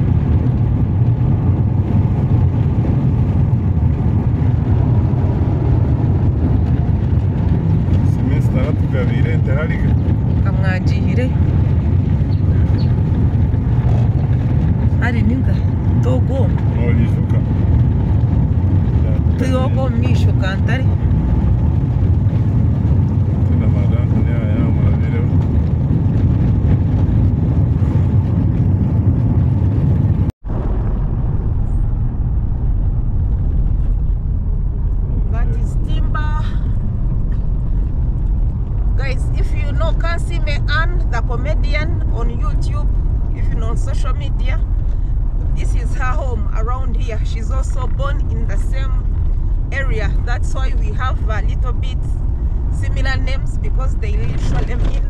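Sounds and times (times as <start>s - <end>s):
car rumbling on dirt road: 0.0s - 55.0s
people talking: 8.0s - 11.4s, 15.0s - 17.5s, 19.0s - 20.9s, 23.5s - 25.3s, 35.3s - 36.6s, 39.0s - 44.6s, 45.6s - 49.0s, 49.7s - 52.1s, 52.8s - 55.0s.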